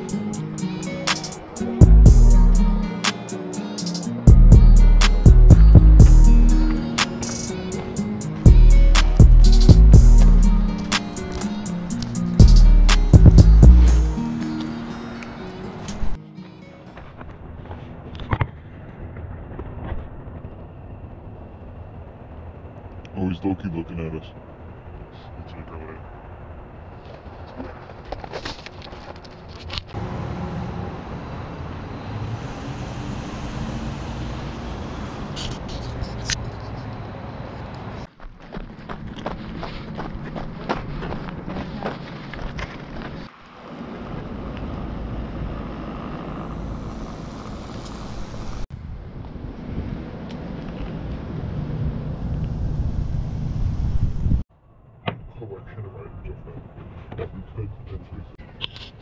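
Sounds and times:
low outdoor rumble: 0:17.0 - 0:30.2, 0:34.1 - 0:58.5.

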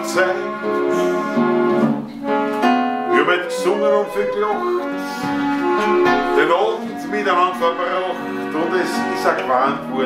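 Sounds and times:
accordion sustained notes: 0:00.0 - 0:10.0
guitar plucking chords: 0:01.4 - 0:10.0.

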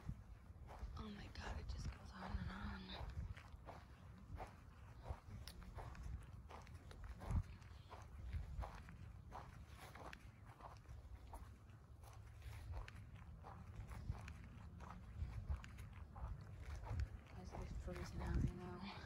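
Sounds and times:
footsteps on grass: 0:00.0 - 0:19.0.

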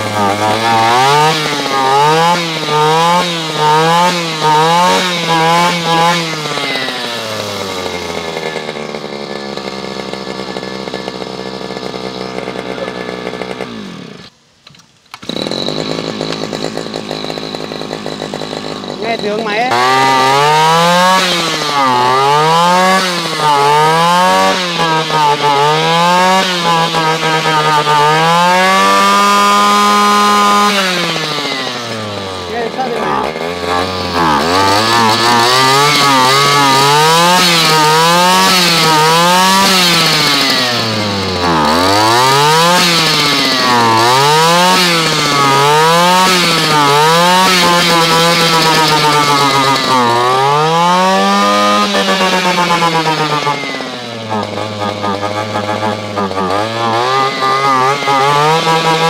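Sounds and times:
brush cutter engine revving: 0:00.0 - 0:59.0.

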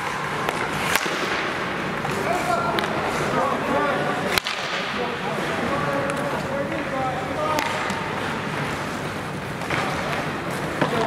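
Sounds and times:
hockey stick hitting puck: 0:00.0 - 0:03.3, 0:04.3 - 0:05.2, 0:06.0 - 0:08.8, 0:09.5 - 0:11.0
players' voices: 0:00.0 - 0:11.0
rink background noise: 0:00.0 - 0:11.0.

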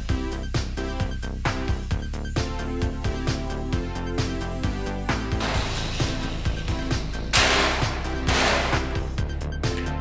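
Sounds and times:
music with steady beat: 0:00.0 - 0:10.0
loud hissing noise bursts: 0:04.6 - 0:07.2.

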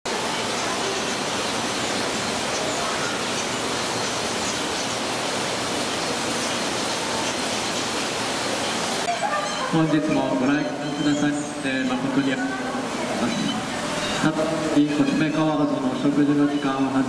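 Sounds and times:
flowing water rushing: 0:00.1 - 0:17.0.

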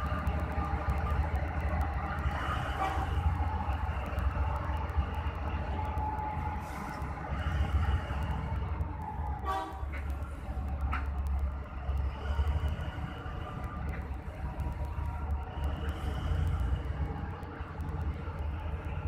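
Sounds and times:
large diesel truck engine rumbling: 0:00.0 - 0:19.0.

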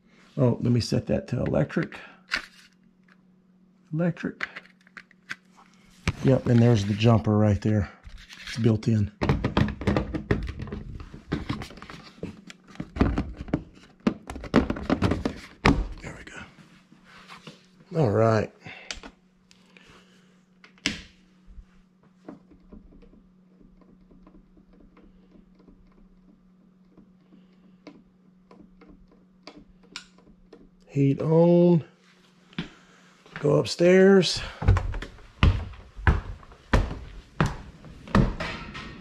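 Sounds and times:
faint low hum: 0:00.0 - 0:39.0
plastic thermostat clicks and knocks: 0:09.2 - 0:11.6, 0:22.2 - 0:30.8.

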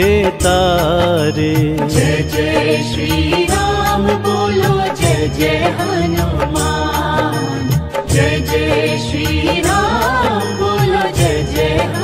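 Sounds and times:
devotional song with beat: 0:00.0 - 0:12.0.

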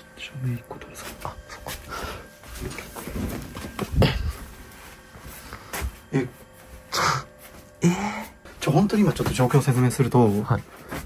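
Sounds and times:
footsteps and knocks: 0:00.7 - 0:07.8, 0:08.4 - 0:11.0.

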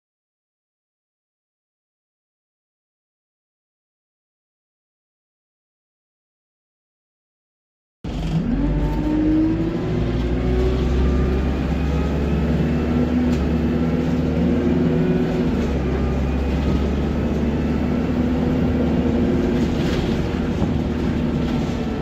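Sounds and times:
bus diesel engine accelerating: 0:08.1 - 0:22.0.

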